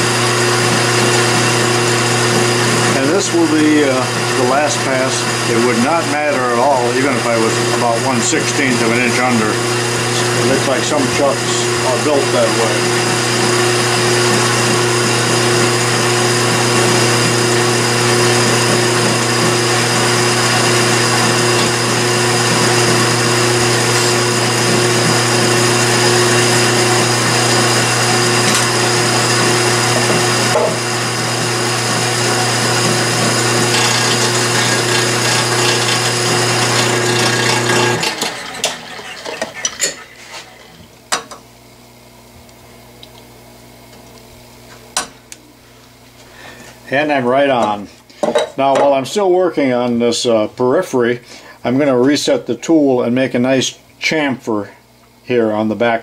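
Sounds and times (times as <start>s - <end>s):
metal lathe humming: 0.0s - 41.4s.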